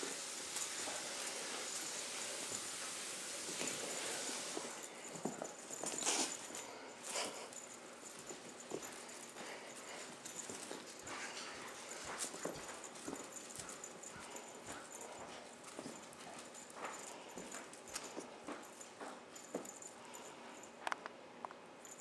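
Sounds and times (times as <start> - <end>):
kitten paws thumping on carpet: 8.2 - 19.8.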